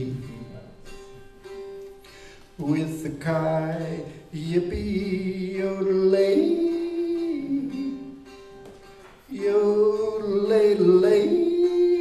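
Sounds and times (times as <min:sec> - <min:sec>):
man yodeling: 0:02.6 - 0:08.2, 0:09.3 - 0:12.0.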